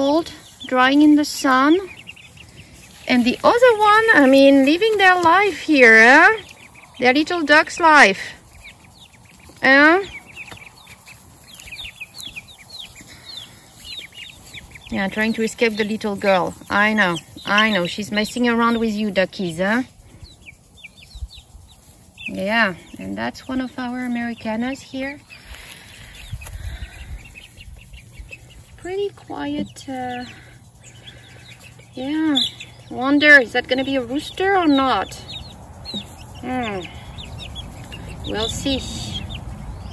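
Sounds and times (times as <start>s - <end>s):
ducklings peeping: 0.0s - 39.9s.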